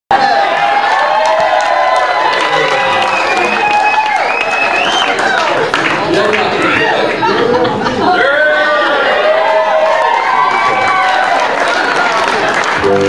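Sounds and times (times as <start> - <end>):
audience applauding and cheering: 0.1 - 13.0.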